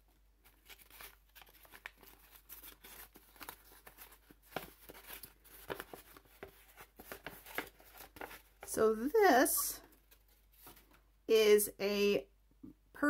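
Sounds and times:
paper crinkling and rustling: 0.4 - 8.7, 9.8 - 11.0.

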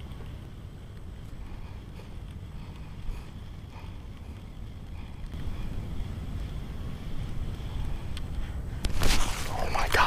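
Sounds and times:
wind buffeting microphone: 0.0 - 10.0
faint clicks: 7.2 - 9.0.

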